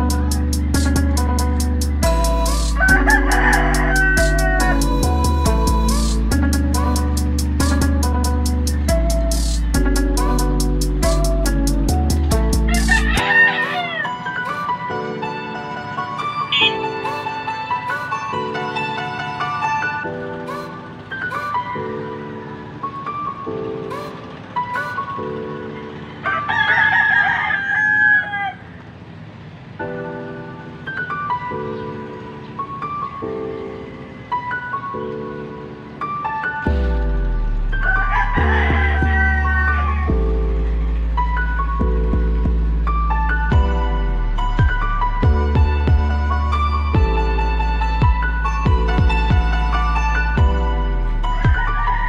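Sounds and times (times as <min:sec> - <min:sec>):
background music with steady beat: 0:00.0 - 0:27.4, 0:29.8 - 0:52.0
rooster crowing: 0:02.7 - 0:04.9, 0:12.6 - 0:14.7, 0:25.8 - 0:28.9, 0:37.7 - 0:40.2, 0:51.1 - 0:52.0.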